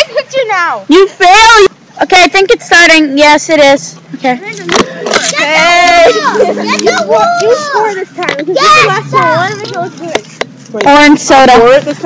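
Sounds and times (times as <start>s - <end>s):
girls calling and chattering: 0.0s - 12.0s.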